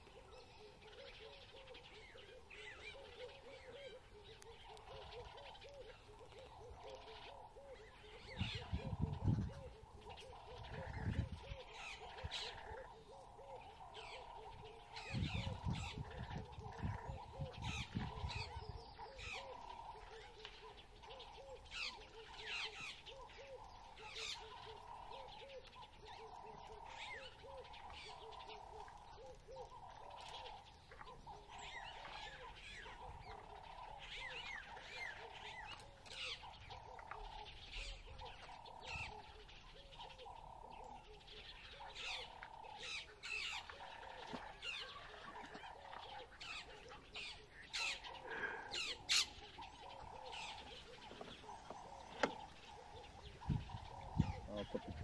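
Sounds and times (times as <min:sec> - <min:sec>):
birds chirping and calling: 0:00.0 - 0:55.0
low repeated bird call: 0:00.0 - 0:55.0.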